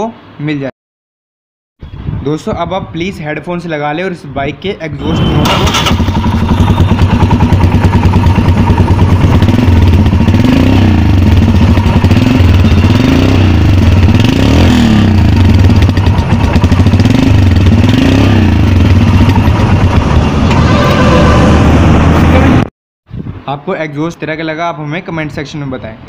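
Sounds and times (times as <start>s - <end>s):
motorcycle engine revving: 5.0s - 22.7s.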